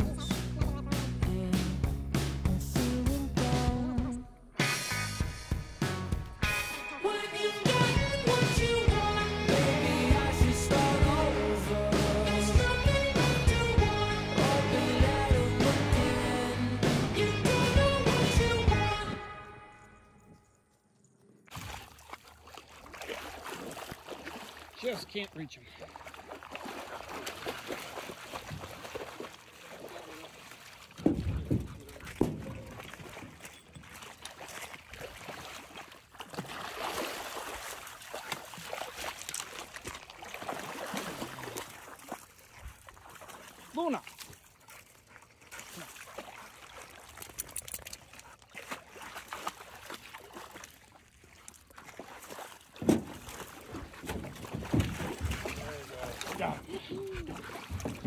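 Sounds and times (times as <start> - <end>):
water sloshing and splashing: 18.6 - 58.0.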